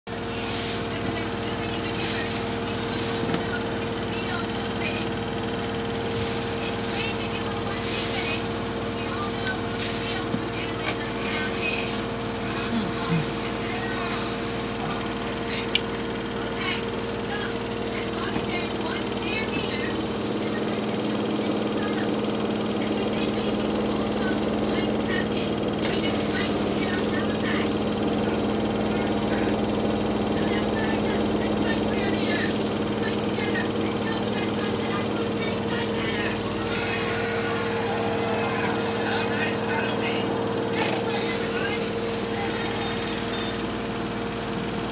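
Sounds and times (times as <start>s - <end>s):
washing machine motor whine: 0.0s - 44.9s.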